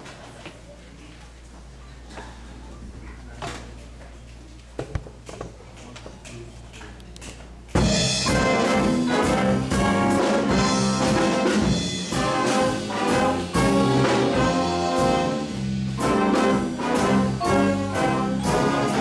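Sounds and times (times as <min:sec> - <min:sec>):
jazz big band playing: 0:07.7 - 0:19.0.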